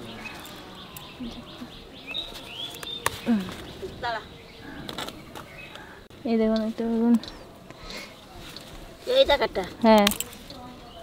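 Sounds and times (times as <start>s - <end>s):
birds chirping: 0.0s - 11.0s.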